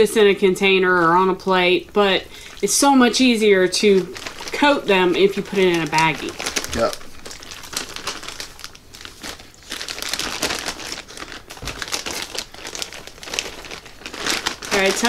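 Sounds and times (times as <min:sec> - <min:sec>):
plastic bag crinkling: 0:00.6 - 0:15.0.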